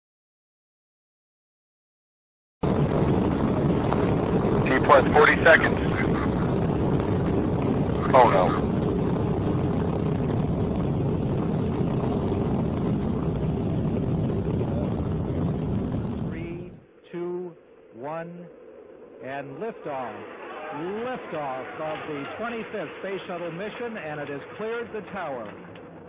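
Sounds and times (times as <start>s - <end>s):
rocket motors roaring: 2.6s - 26.0s.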